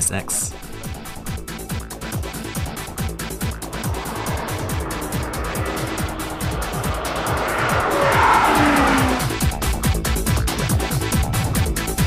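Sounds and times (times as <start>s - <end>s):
car driving at speed: 0.6s - 12.0s.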